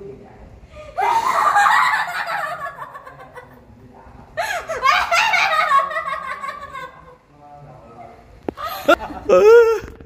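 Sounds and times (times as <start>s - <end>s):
woman laughing in shrieks: 1.0s - 2.1s, 8.6s - 10.0s.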